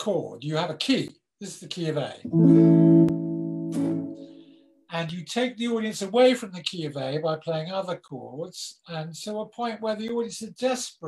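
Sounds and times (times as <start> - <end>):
acoustic guitar chord strummed: 2.3 - 4.5.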